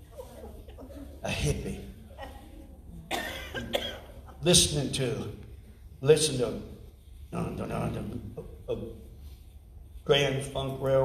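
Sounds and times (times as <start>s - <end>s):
person coughing: 3.1s - 4.4s.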